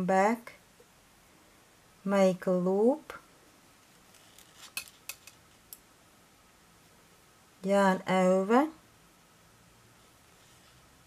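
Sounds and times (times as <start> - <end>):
knitting needles clicking: 4.3 - 5.9.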